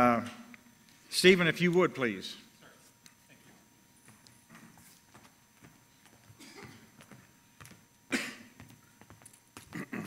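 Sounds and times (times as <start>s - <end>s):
footsteps on stage: 3.5s - 10.0s.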